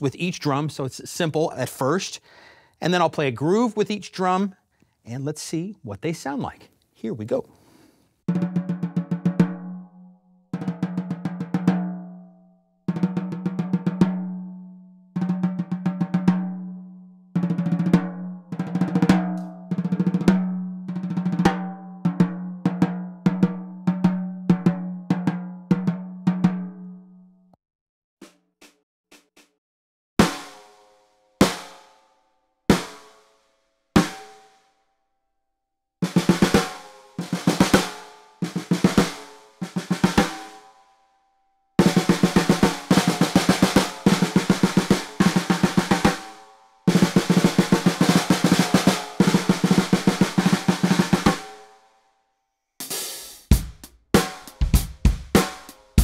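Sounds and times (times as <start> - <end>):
snare drum strokes: 28.2 - 29.6, 36.0 - 40.6, 41.8 - 51.7, 52.8 - 56.0.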